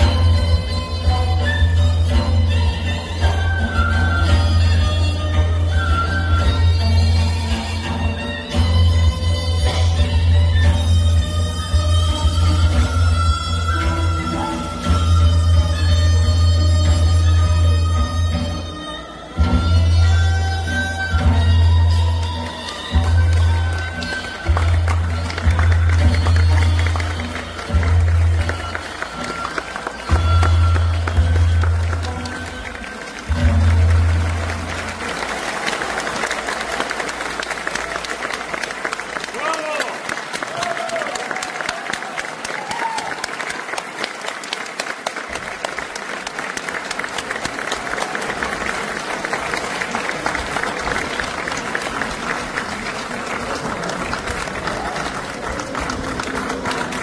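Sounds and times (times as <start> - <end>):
dance accompaniment music: 0.0 - 35.2
audience applauding: 22.1 - 57.0
audience cheering: 34.3 - 52.1.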